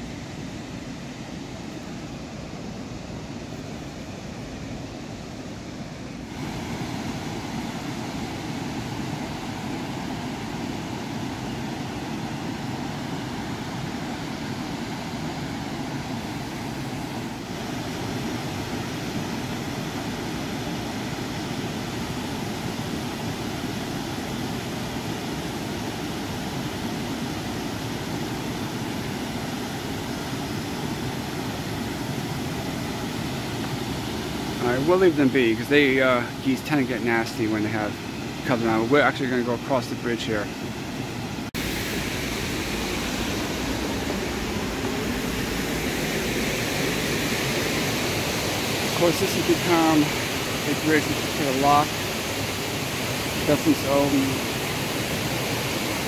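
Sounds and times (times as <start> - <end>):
water rushing over rapids: 0.0 - 56.0.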